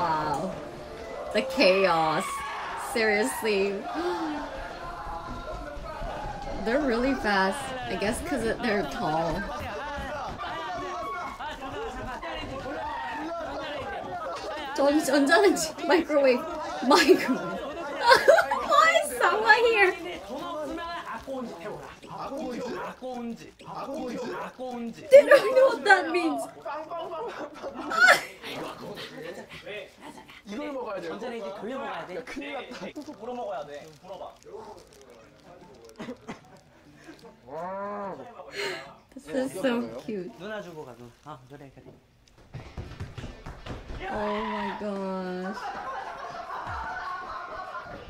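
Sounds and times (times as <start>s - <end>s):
young men chattering: 0.0s - 42.2s, 44.1s - 48.0s.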